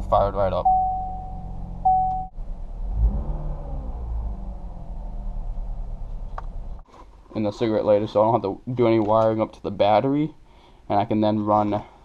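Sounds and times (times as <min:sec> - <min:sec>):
car engine idling: 0:00.0 - 0:06.8.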